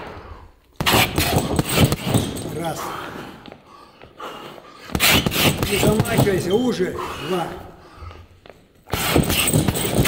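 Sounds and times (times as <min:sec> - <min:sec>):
boxing gloves hitting punching bag: 0:00.8 - 0:02.7, 0:04.9 - 0:06.6, 0:08.9 - 0:10.0.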